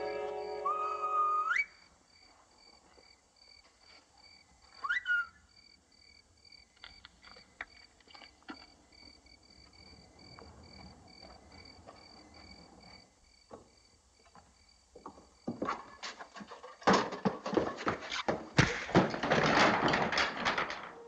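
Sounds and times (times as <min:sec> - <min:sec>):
orchestral music: 0:00.0 - 0:01.4
short rising whistles: 0:00.0 - 0:01.9, 0:04.8 - 0:05.4
crickets chirping: 0:00.0 - 0:16.8.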